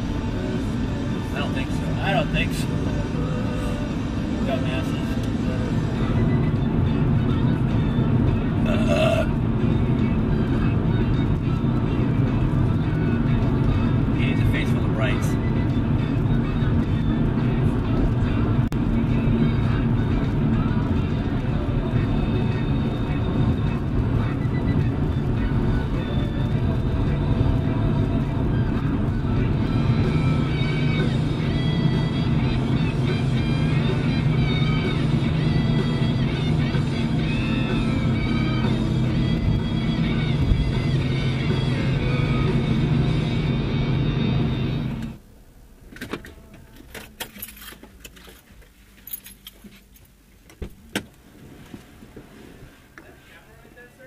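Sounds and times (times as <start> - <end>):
road noise: 0.0 - 54.0
song on car radio: 0.0 - 54.0.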